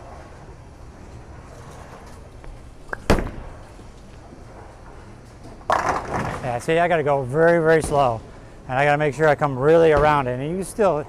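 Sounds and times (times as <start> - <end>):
bowling pins clattering: 0.0 - 11.0.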